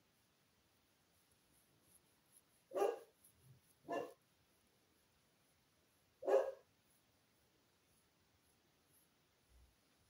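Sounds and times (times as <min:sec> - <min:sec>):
dog barking: 0:02.7 - 0:03.1, 0:03.8 - 0:04.2, 0:06.2 - 0:06.7.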